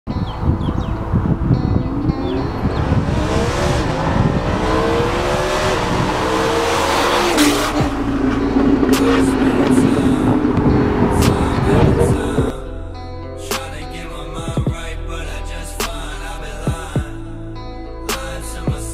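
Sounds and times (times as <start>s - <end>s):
sports car accelerating past: 1.6s - 12.5s.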